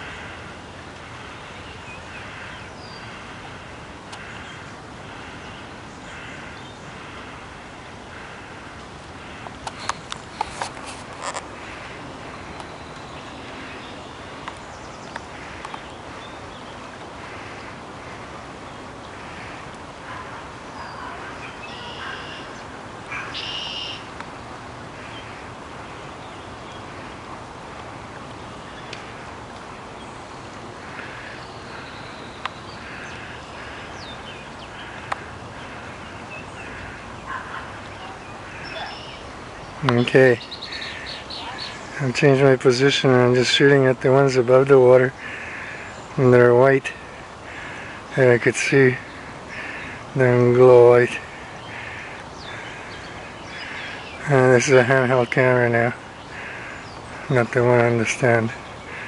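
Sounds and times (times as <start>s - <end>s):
birds calling: 0.0s - 59.0s
river water rushing: 0.0s - 59.0s.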